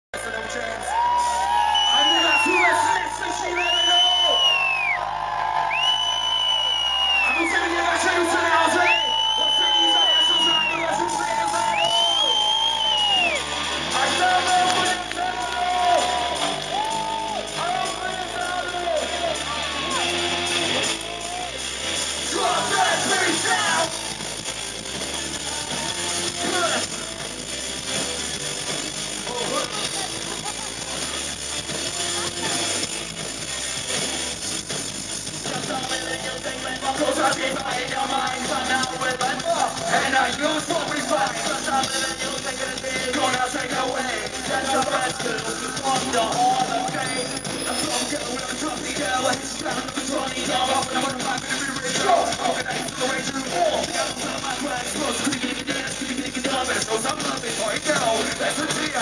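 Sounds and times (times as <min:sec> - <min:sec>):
drums: 0:00.0 - 0:59.0
bass line: 0:00.1 - 0:59.0
person singing: 0:35.4 - 0:59.0.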